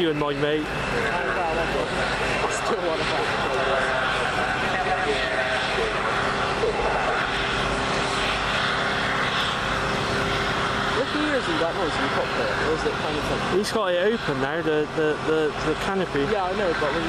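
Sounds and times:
jet engine whining: 0.0 - 17.0
crowd voices: 0.3 - 7.8.

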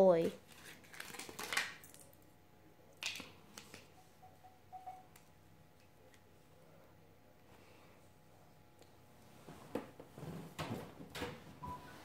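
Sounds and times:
plastic packaging crinkling: 0.4 - 2.1.

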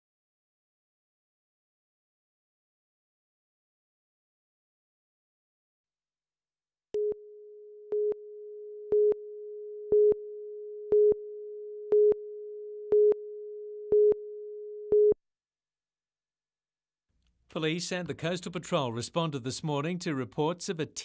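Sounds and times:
steady single-pitched tone: 7.0 - 15.2.

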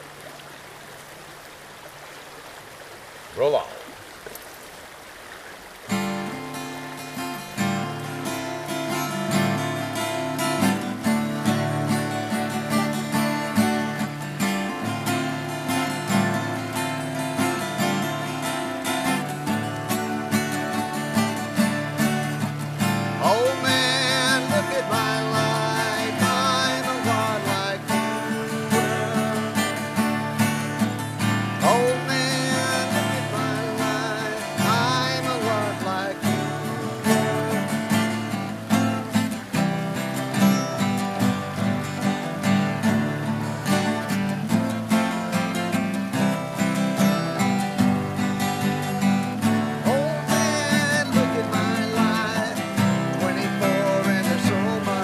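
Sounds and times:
acoustic guitars strumming: 5.9 - 55.0.

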